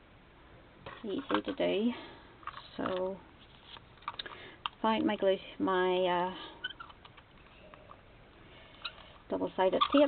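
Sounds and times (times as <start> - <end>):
paper rustling: 3.4 - 4.2.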